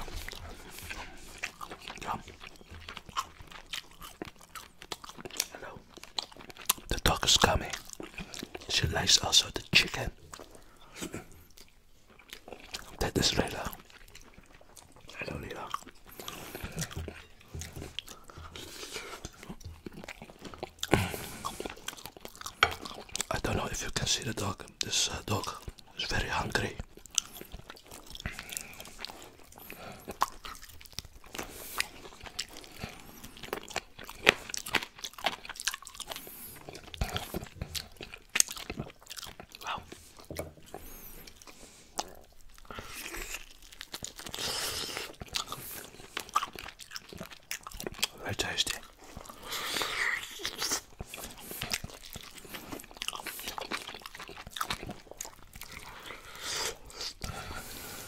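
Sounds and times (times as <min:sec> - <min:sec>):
open-mouth chewing and lip smacking: 0:00.0 - 0:58.0.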